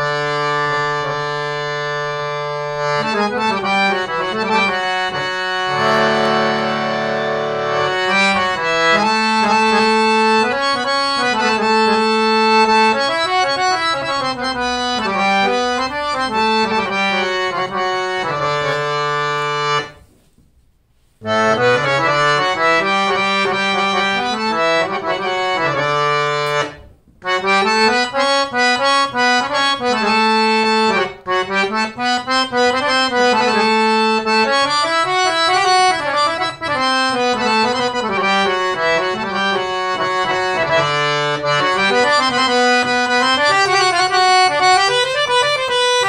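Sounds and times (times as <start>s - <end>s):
harmonium holding a chord: 0.0s - 20.0s, 21.2s - 46.0s.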